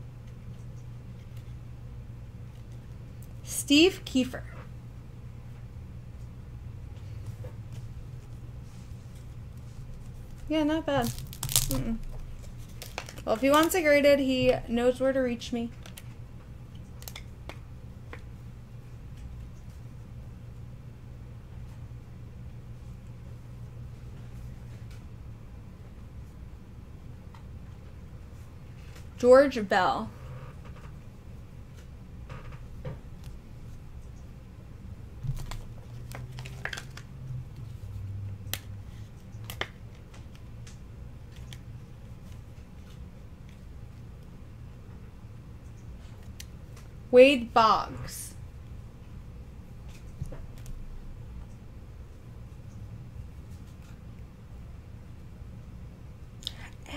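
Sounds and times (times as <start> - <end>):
low steady hum: 0.0 - 56.9.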